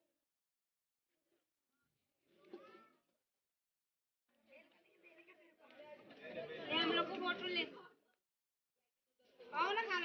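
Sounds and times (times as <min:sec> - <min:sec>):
people chattering: 0:04.3 - 0:08.2, 0:09.2 - 0:10.0.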